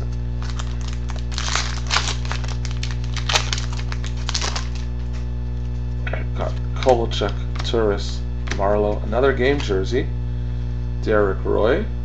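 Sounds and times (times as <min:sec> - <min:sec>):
cards being flipped and shuffled: 0:00.0 - 0:05.3, 0:06.4 - 0:07.9
low electrical hum: 0:00.0 - 0:12.0.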